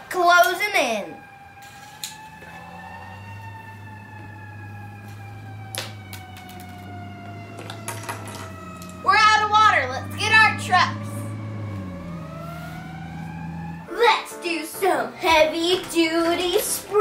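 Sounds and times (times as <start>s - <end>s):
siren-like wailing tone: 0.8s - 13.9s
plastic pieces clicking: 7.6s - 9.0s.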